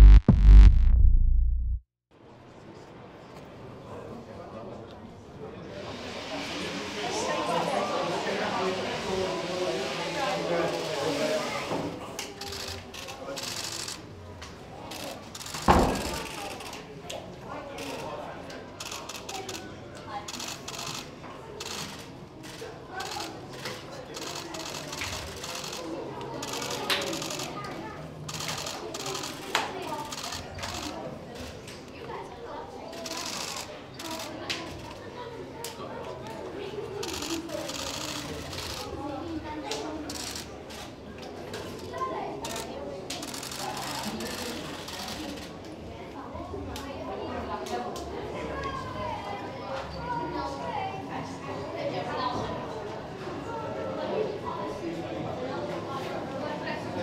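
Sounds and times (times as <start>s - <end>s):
chatter of children and adults: 2.1s - 57.0s
babble of voices: 5.5s - 57.0s.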